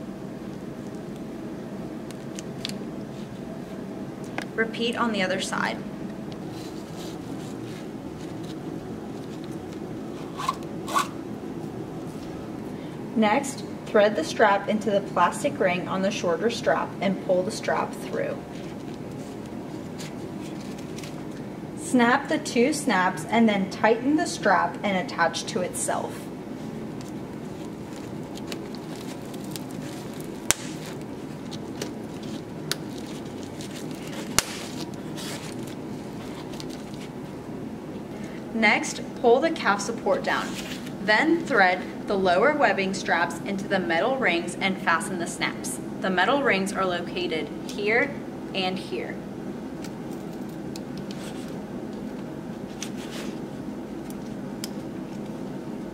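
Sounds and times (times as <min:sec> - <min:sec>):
fabric and strap handling: 0:06.4 - 0:11.2, 0:26.6 - 0:37.3, 0:52.6 - 0:53.4
strap sliding through metal ring: 0:10.2 - 0:11.2.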